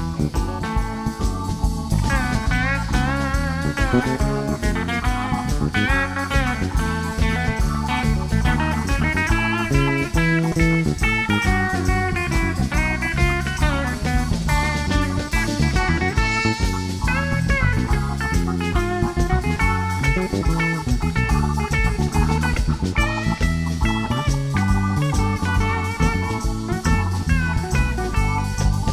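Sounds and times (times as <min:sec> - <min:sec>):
bass: 0:00.0 - 0:28.9
drums: 0:00.0 - 0:28.9
electric lead guitar: 0:00.0 - 0:28.9
keyboard: 0:00.0 - 0:28.9.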